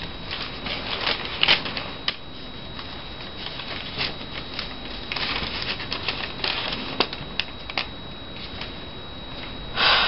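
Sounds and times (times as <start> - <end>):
paper rustling and crackling: 0.0 - 9.6.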